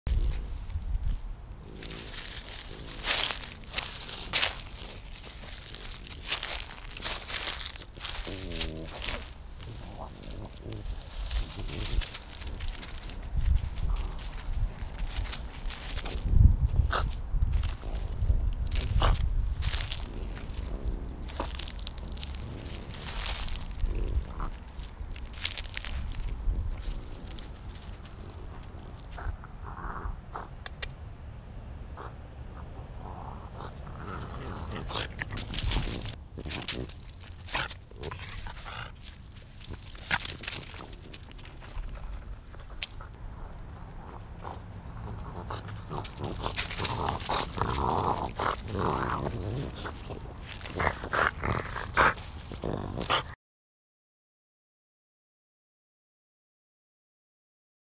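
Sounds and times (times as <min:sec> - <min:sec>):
leaves crunching and rustling: 0:00.1 - 0:29.3, 0:33.6 - 0:53.2
dog grunting: 0:01.6 - 0:05.0, 0:05.8 - 0:14.9, 0:18.8 - 0:30.6, 0:32.0 - 0:42.2, 0:44.1 - 0:53.4.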